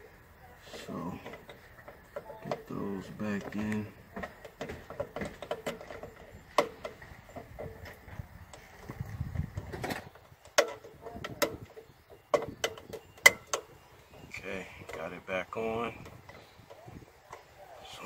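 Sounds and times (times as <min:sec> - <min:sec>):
plastic parts clicking and knocking: 0:01.2 - 0:13.8.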